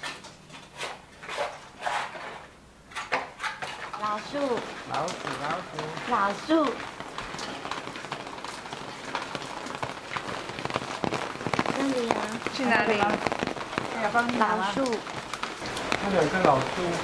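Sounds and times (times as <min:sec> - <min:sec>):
rain on an umbrella: 0:03.5 - 0:17.0.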